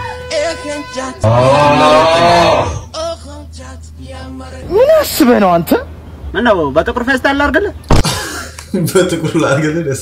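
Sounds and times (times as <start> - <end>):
low cow-like moo: 1.2 - 2.9.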